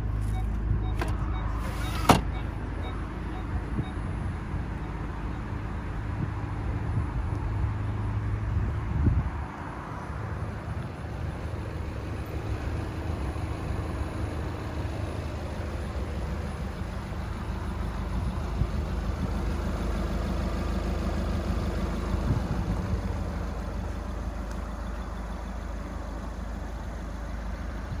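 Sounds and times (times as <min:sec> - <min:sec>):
car engine idling: 0:00.0 - 0:28.0
outdoor background noise: 0:00.0 - 0:28.0.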